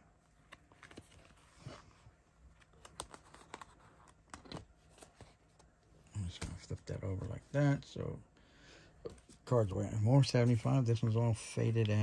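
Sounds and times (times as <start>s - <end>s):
plastic binder pages crinkling: 0.3s - 6.8s.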